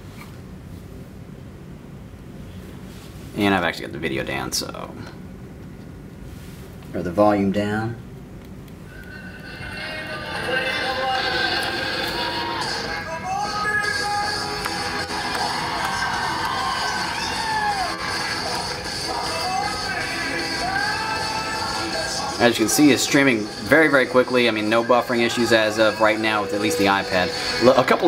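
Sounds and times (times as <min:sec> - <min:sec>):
music with singing from speaker: 0:08.9 - 0:28.0.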